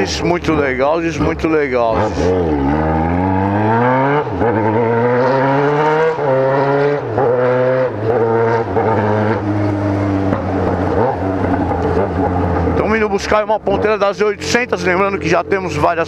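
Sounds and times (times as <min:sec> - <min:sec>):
motorcycle engine upshifting: 0:00.0 - 0:16.0.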